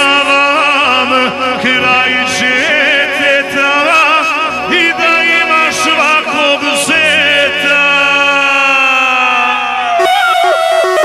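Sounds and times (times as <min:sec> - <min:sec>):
man singing a long note: 0:00.0 - 0:10.6
electronic keyboard chords: 0:00.0 - 0:11.0.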